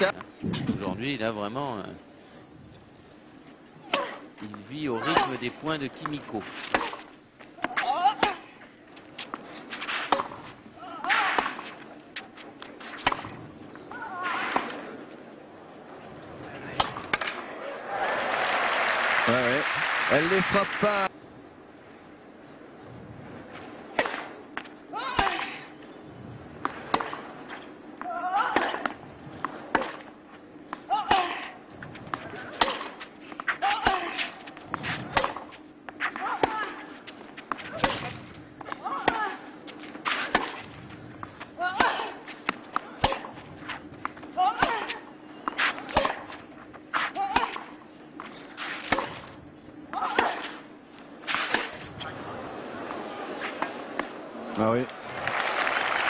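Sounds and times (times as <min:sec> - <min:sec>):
tennis racket hits: 0:06.0 - 0:08.5, 0:09.2 - 0:11.8, 0:32.1 - 0:46.4, 0:51.2 - 0:51.9
low steady hum: 0:20.6 - 0:55.4.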